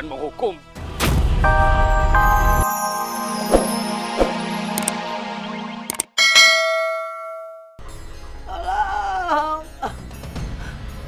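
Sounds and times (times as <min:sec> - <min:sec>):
intro jingle music: 0:01.4 - 0:07.3
bright bell chime: 0:01.5 - 0:05.2, 0:06.2 - 0:07.8
quick clicks: 0:05.9 - 0:06.1.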